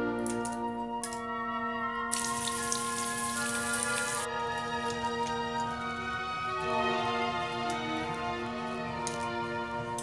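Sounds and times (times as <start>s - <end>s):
instrumental music: 0.0s - 10.0s.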